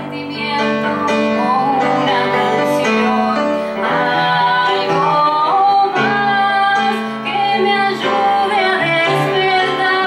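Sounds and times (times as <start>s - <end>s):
piano: 0.0s - 10.0s
woman singing: 0.0s - 10.0s.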